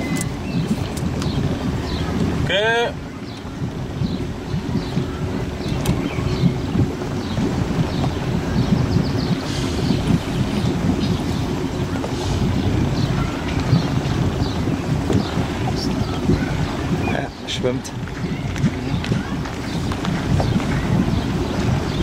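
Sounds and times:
motorboat engine running: 0:00.0 - 0:22.0
wind buffeting microphone: 0:00.0 - 0:22.0.

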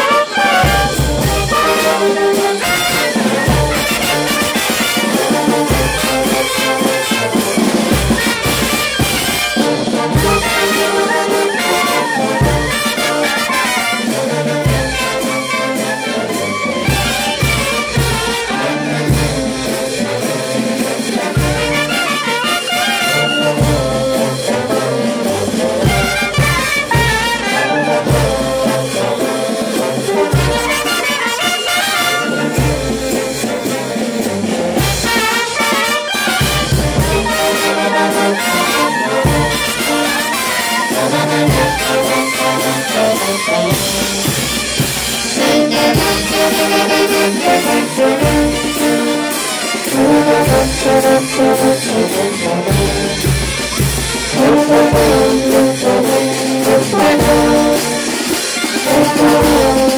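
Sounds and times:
trumpets trombones and saxophones: 0:00.0 - 0:59.9.

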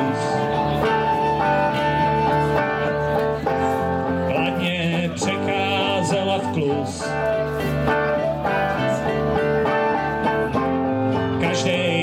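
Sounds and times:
guitars strumming: 0:00.0 - 0:12.0.

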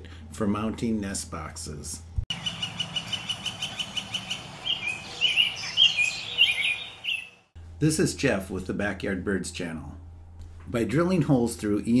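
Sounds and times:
birds chirping: 0:02.3 - 0:07.5.

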